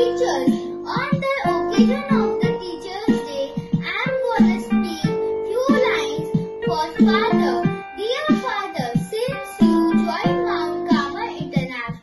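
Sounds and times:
child singing: 0.0 - 12.0
instrumental accompaniment: 0.0 - 12.0.

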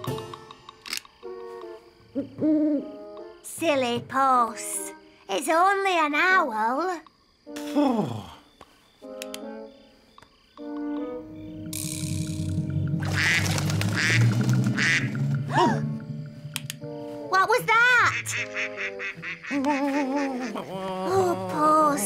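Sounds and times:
soft background music: 0.0 - 22.0
person sighing: 7.7 - 8.5, 15.5 - 16.0
duck quacking: 13.0 - 15.2, 18.0 - 20.6.

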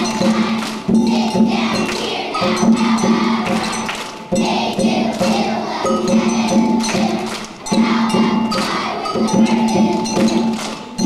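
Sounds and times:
bell-like percussion: 0.0 - 11.0
children's choir singing: 0.0 - 11.0
hand clapping: 0.0 - 11.0.

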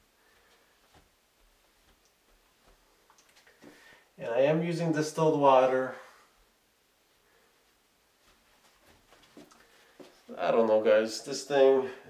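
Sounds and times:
faint soft clicks: 3.0 - 3.8.

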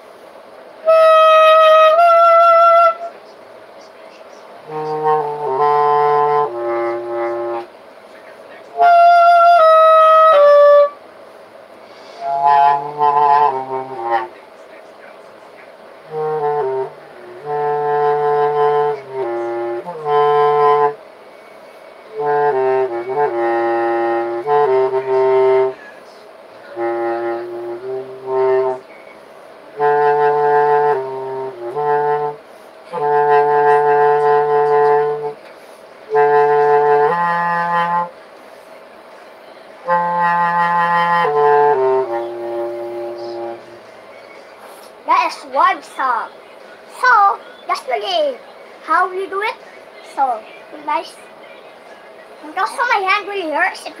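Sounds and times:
bass clarinet phrases: 0.8 - 3.2, 4.6 - 7.7, 8.7 - 11.0, 12.1 - 14.4, 16.0 - 21.0, 22.1 - 25.8, 26.7 - 28.9, 29.7 - 35.4, 36.1 - 38.2, 39.8 - 43.9.

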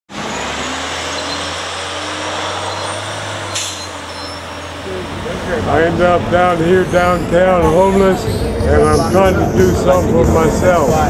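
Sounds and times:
idling vehicle engines rumbling: 0.1 - 11.0.

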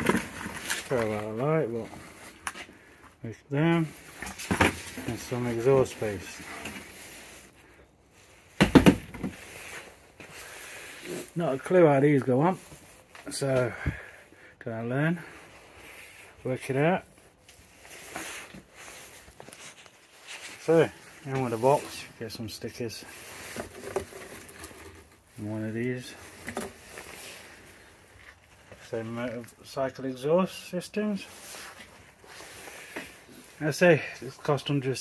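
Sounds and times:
cardboard packaging rustling and knocking: 4.2 - 5.2, 8.6 - 9.5.

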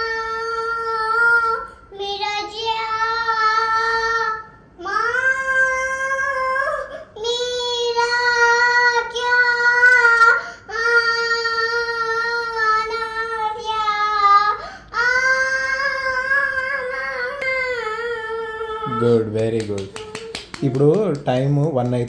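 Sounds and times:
girl singing long high notes: 0.0 - 19.2.

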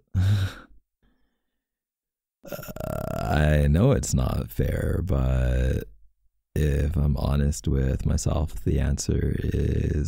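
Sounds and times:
man's throaty hesitant hum: 0.0 - 0.8, 2.4 - 3.4
man speaking: 3.3 - 5.9, 6.6 - 10.0.

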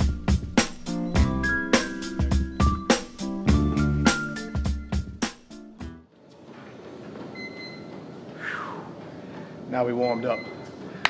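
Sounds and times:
gym machine and room noise: 6.0 - 11.0.

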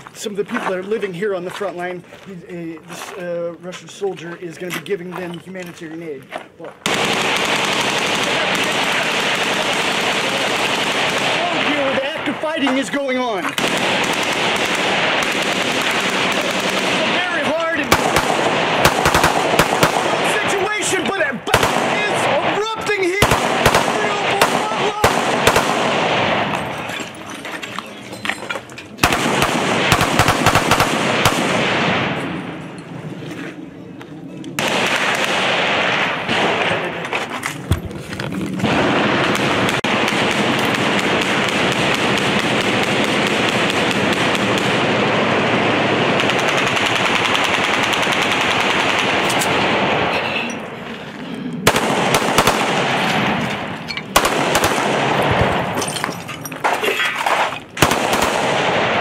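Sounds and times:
rapid gunfire: 6.8 - 12.2, 13.6 - 20.9, 21.5 - 26.5, 29.0 - 32.1, 34.6 - 37.0, 38.6 - 50.2, 51.6 - 53.4, 54.1 - 55.7, 57.8 - 59.0.

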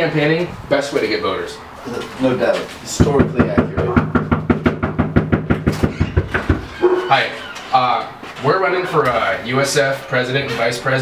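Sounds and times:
rapid knocking on door: 2.9 - 7.0.

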